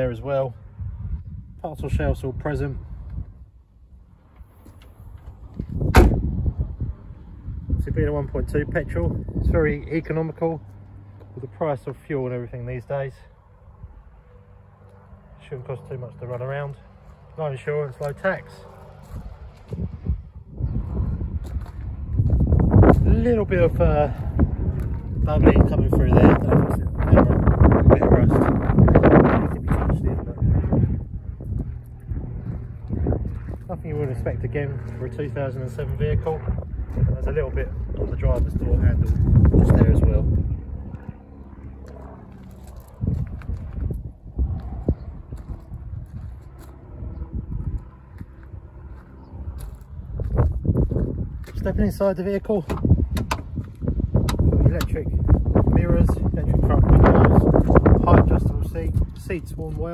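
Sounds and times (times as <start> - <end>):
wind rumbling on microphone: 0.0 - 15.4, 16.7 - 59.9
microphone handling noise: 4.6 - 7.8, 52.6 - 59.2
footsteps on gravel: 16.8 - 20.1, 20.7 - 25.7, 31.4 - 39.6, 41.0 - 52.7.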